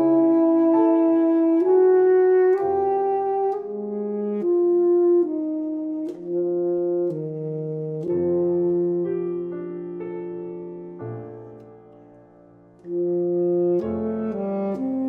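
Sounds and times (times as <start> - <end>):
saxophone melody: 0.0 - 11.7, 12.8 - 15.0
piano chords: 0.0 - 15.0.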